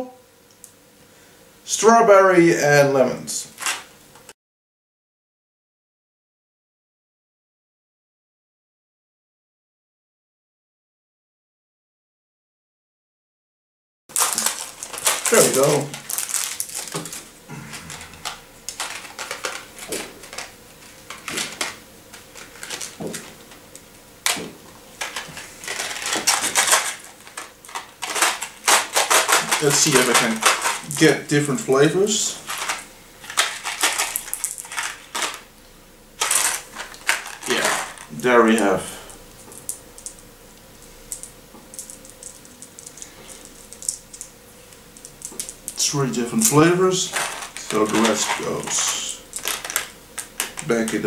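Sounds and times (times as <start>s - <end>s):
paper box rustling and crinkling: 14.1s - 23.4s, 25.0s - 31.2s, 31.8s - 35.4s, 36.2s - 38.7s, 46.5s - 51.0s
hard candies clicking together: 14.1s - 23.6s, 24.2s - 31.1s, 32.5s - 35.4s, 36.2s - 38.7s, 41.1s - 44.4s, 45.0s - 45.8s, 46.4s - 51.0s.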